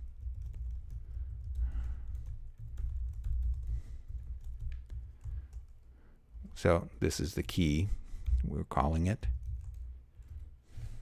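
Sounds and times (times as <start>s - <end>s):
computer keyboard typing: 0.0s - 5.9s, 9.2s - 10.5s.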